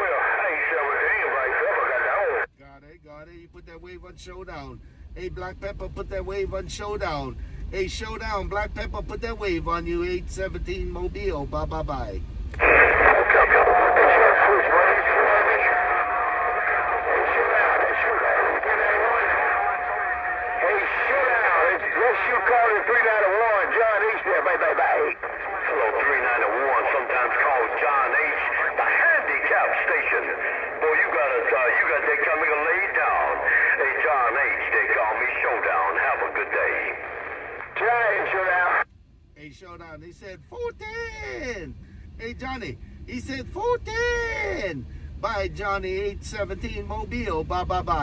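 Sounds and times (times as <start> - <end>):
steady radio whistle: 0.0 - 2.5, 12.6 - 38.8
voice over radio speaker: 0.0 - 38.8, 39.4 - 48.0.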